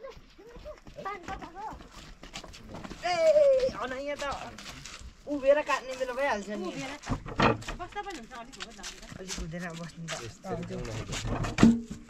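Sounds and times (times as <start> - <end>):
people talking: 5.3 - 7.0, 7.8 - 11.0
hollow wooden knocks: 6.9 - 9.6, 10.9 - 12.0.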